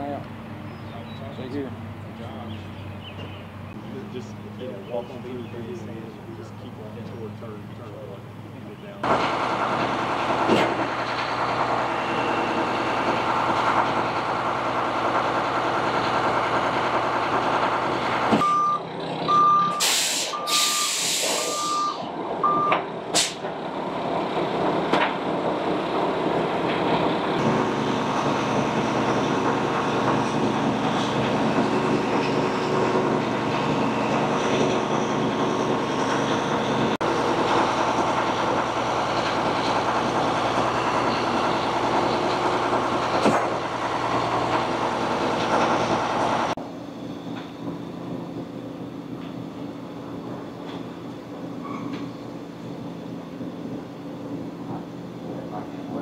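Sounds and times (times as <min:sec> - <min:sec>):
heavy diesel engine running: 0:00.0 - 0:56.0
reversing alarm beeping: 0:18.4 - 0:22.8
air brake hiss: 0:19.8 - 0:21.7, 0:23.1 - 0:23.5.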